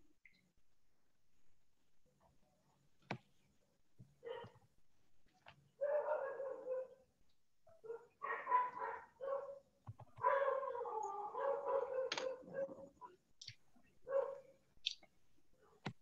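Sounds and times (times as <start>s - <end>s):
dog drawn-out calls: 5.8s - 7.0s, 7.8s - 9.6s, 10.2s - 13.2s.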